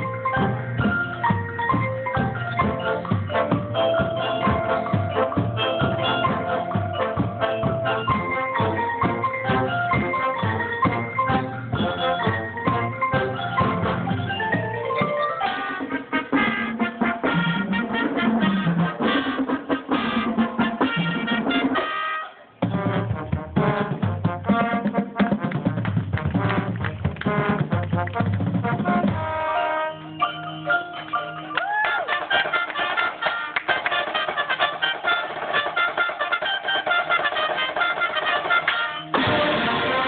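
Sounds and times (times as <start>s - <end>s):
drums: 0.0s - 40.0s
marching brass horns: 2.4s - 14.4s, 15.4s - 40.0s.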